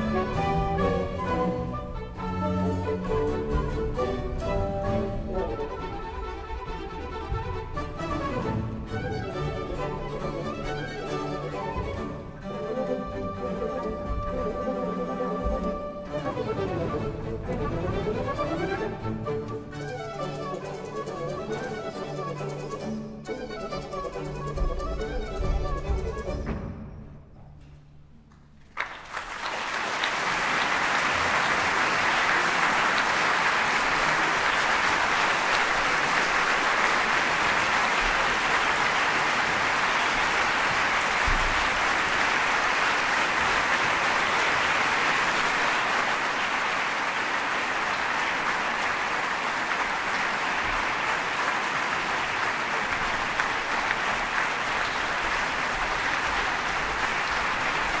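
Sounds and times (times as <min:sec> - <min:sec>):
audience applauding: 0:28.6 - 0:58.0.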